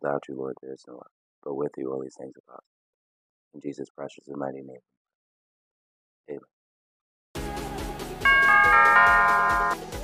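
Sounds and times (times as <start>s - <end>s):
notification bell chime: 8.2s - 9.8s
electronic music with beat: 8.3s - 10.0s.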